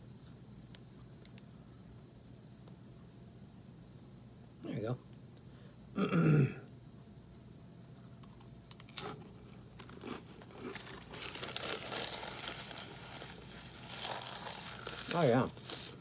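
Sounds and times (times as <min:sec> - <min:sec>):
cracker being chewed: 0:07.9 - 0:16.0
paper napkin crinkling: 0:10.7 - 0:16.0.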